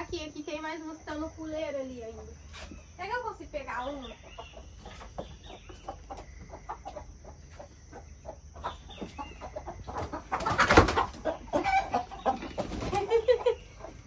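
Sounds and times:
chickens clucking: 1.9 - 14.0
chicken squawking: 8.6 - 14.0
wings flapping: 10.3 - 11.2, 12.5 - 13.4.

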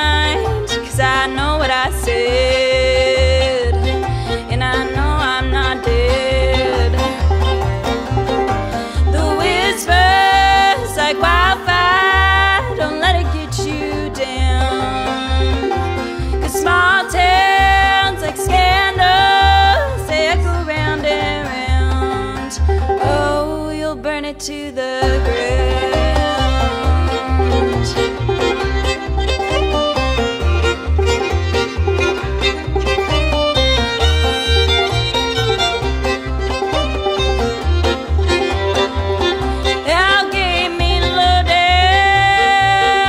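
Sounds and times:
fiddle melody: 0.0 - 43.0
picked banjo: 0.0 - 43.0
upright bass line: 0.0 - 43.0.

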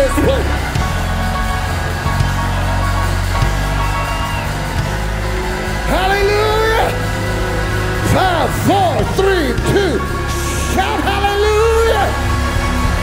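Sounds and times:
congregation shouting praise: 0.0 - 13.0
heavy bass: 0.0 - 13.0
worship band playing: 0.0 - 13.0.

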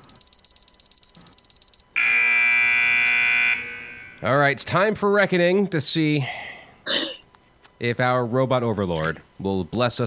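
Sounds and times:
electronic timer beeping: 0.0 - 1.8
buzzer: 0.0 - 3.9.

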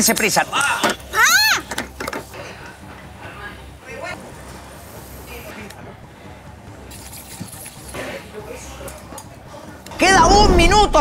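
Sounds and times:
faint indistinct voices: 0.8 - 10.0.

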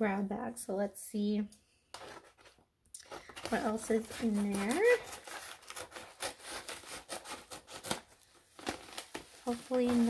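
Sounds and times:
packaging rustling and crinkling: 2.0 - 10.0.

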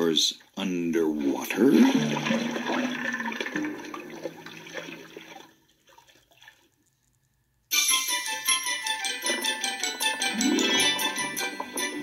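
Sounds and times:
rushing splashing water: 1.2 - 6.6
music jingle: 7.7 - 12.0.

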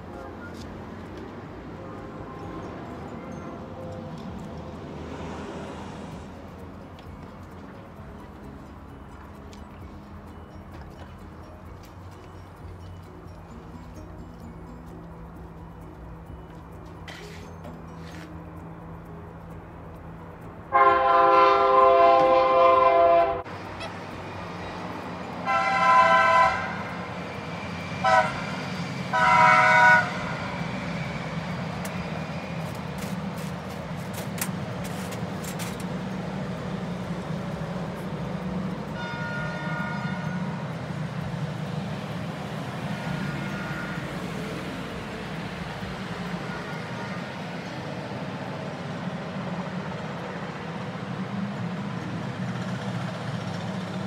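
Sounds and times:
train rumble: 0.0 - 54.0
train horn chord: 20.7 - 24.1, 25.4 - 27.1, 27.9 - 30.8, 38.9 - 40.8, 43.0 - 44.7.

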